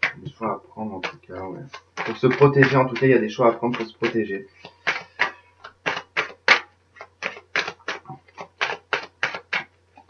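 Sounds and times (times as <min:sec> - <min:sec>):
cards being shuffled: 0:01.0 - 0:09.7.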